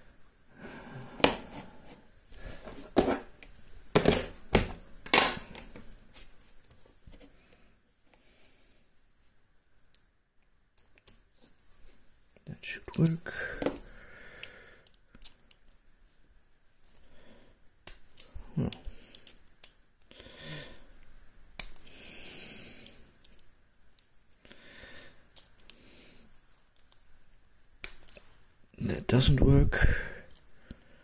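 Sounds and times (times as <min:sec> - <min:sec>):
soft breaths: 0:00.0 - 0:03.6, 0:06.1 - 0:09.4, 0:13.2 - 0:15.6, 0:16.8 - 0:23.6, 0:24.2 - 0:27.3, 0:29.8 - 0:31.0.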